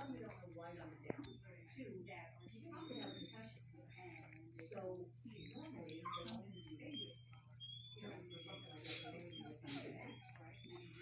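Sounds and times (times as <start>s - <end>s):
low background talk: 0.0s - 11.0s
dog whining: 5.4s - 11.0s.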